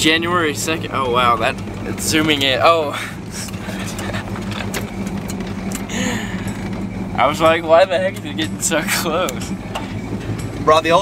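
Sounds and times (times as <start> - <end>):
truck engine humming: 0.0 - 11.0.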